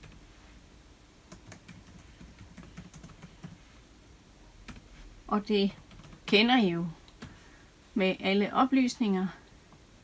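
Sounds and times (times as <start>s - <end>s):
laptop keyboard typing: 0.0s - 0.2s, 1.3s - 3.6s, 4.7s - 4.9s, 5.7s - 6.3s.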